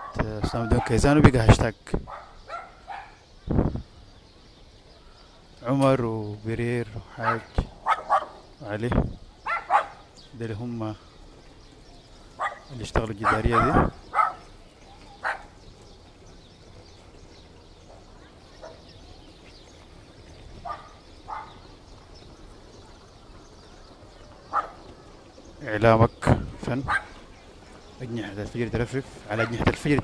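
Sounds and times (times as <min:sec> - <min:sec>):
dog barking: 0:00.0 - 0:01.0, 0:02.1 - 0:03.2, 0:07.2 - 0:08.4, 0:09.4 - 0:10.0, 0:12.4 - 0:14.5, 0:15.2 - 0:15.6, 0:18.6 - 0:18.9, 0:20.6 - 0:21.6, 0:24.5 - 0:24.9, 0:26.9 - 0:27.2, 0:29.4 - 0:29.6.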